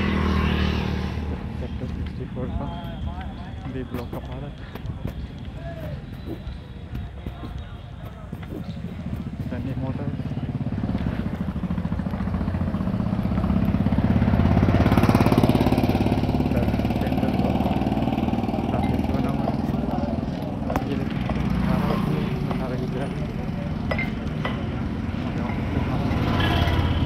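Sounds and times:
vehicle engine running: 0:00.0 - 0:27.0.

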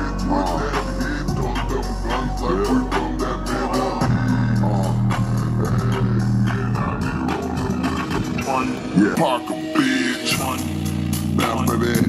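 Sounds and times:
hip-hop track on speaker: 0:00.0 - 0:12.0
vocal snippets: 0:00.0 - 0:12.0
deep bass note: 0:02.4 - 0:09.0.

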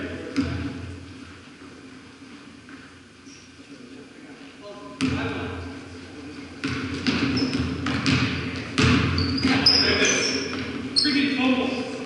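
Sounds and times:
sneaker squeaks: 0:02.6 - 0:03.6, 0:06.3 - 0:11.6
basketball bouncing on hardwood: 0:05.0 - 0:05.2, 0:06.6 - 0:09.7.

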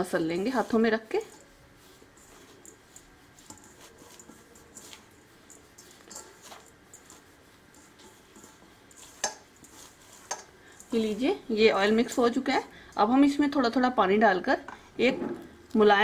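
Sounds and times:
hands rubbing flour: 0:00.0 - 0:14.6.

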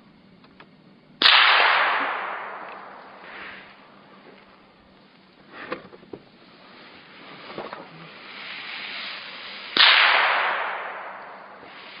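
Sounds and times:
gunshot with echo: 0:01.2 - 0:03.6, 0:09.8 - 0:11.8
background rushing noise: 0:01.2 - 0:12.0.

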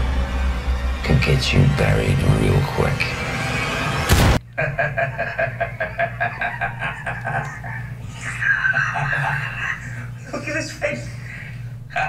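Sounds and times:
low steady hum: 0:00.0 - 0:12.0
man laughing: 0:04.4 - 0:10.7.

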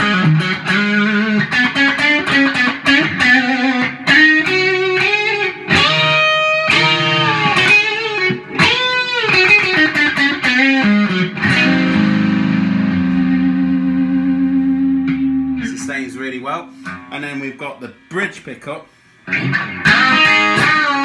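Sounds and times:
overdriven electric guitar blues lead: 0:00.0 - 0:17.2, 0:19.2 - 0:21.0.

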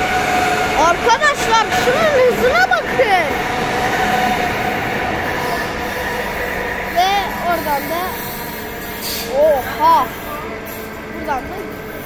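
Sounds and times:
high-speed train passing: 0:00.0 - 0:12.0.

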